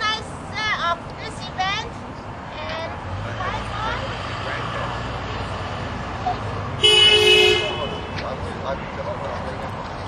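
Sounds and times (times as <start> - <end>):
low traffic rumble: 0.0 - 10.0
car horn honk: 6.8 - 8.3.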